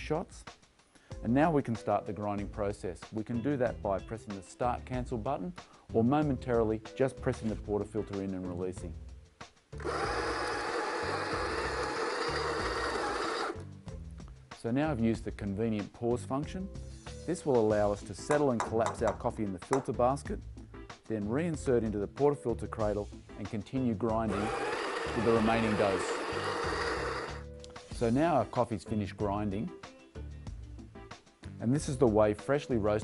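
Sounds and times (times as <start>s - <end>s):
background music: 0.0s - 33.0s
coffee grinder whirring: 9.8s - 13.6s, 24.2s - 27.5s.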